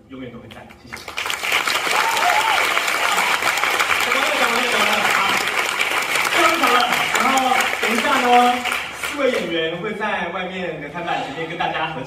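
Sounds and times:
audience applauding: 0:00.9 - 0:09.5.

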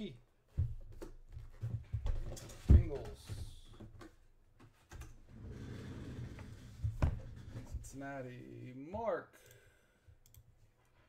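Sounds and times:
scraping and rubbing of boxed helmet: 0:05.3 - 0:07.9.

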